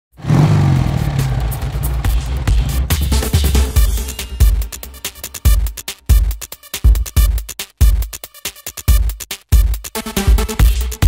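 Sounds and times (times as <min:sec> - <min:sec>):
motorcycle engine revving: 0:00.1 - 0:04.1
music: 0:00.7 - 0:11.0.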